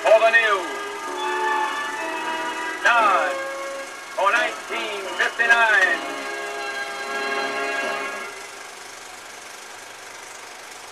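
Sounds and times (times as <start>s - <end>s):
held orchestral chord: 0.0s - 8.8s
film projector running: 0.0s - 10.9s.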